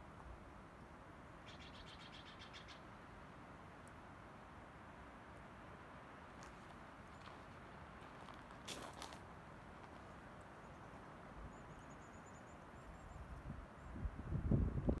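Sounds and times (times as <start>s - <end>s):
rustle: 0.0s - 15.0s
distant bird calls: 1.4s - 3.0s, 10.5s - 14.0s.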